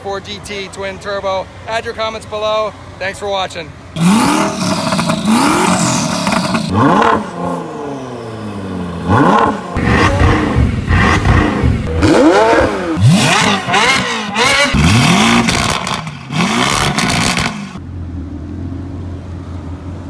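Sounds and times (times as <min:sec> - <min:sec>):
sports car engine revving: 0:04.0 - 0:19.5.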